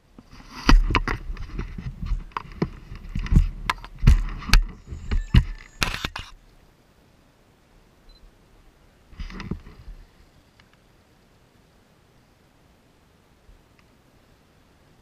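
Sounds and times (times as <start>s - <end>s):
wind on microphone: 0.3s - 6.3s.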